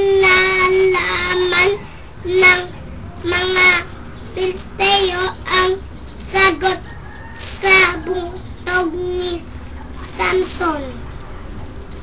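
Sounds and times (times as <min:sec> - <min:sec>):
child singing syllables: 0:00.0 - 0:11.0.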